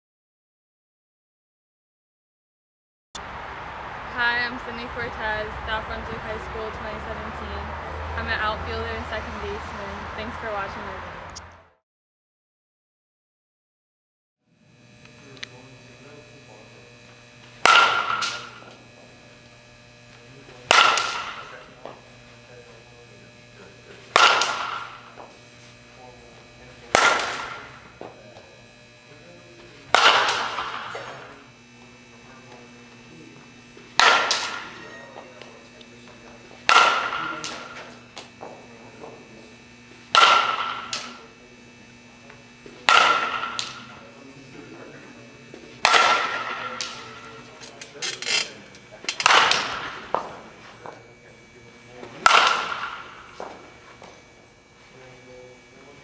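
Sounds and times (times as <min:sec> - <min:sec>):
bat striking softball: 0:17.6 - 0:18.7, 0:20.7 - 0:21.6, 0:24.1 - 0:25.3, 0:26.9 - 0:28.1, 0:29.9 - 0:31.3, 0:33.9 - 0:34.9, 0:36.6 - 0:38.0, 0:40.1 - 0:41.2, 0:42.8 - 0:44.0, 0:45.8 - 0:47.4, 0:49.1 - 0:51.0, 0:52.1 - 0:54.1.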